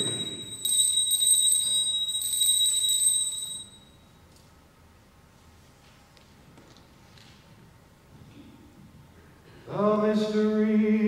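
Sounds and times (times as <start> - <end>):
altar bell ringing: 0.0 - 4.2.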